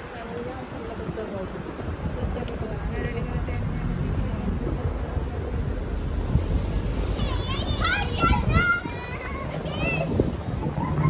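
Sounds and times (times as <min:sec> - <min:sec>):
low traffic rumble: 0:00.0 - 0:11.0
passers-by talking: 0:00.0 - 0:11.0.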